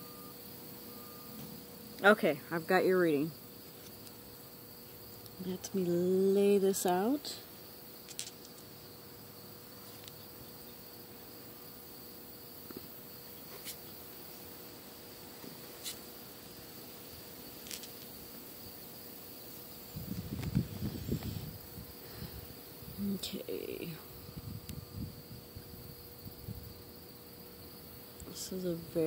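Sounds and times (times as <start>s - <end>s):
crickets chirring: 0.0s - 29.0s.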